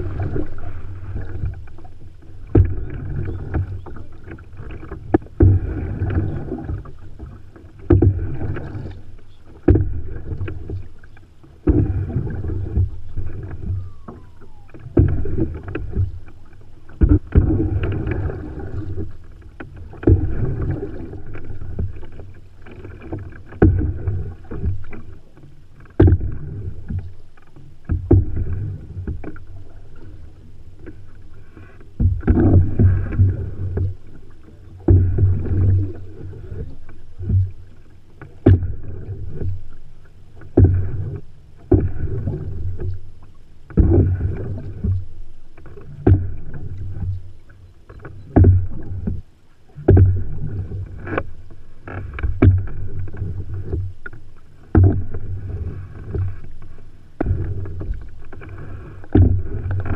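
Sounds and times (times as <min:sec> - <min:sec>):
paddle stroke sounds: 0:00.0 - 0:59.9
water splashing along hull: 0:00.0 - 0:59.9.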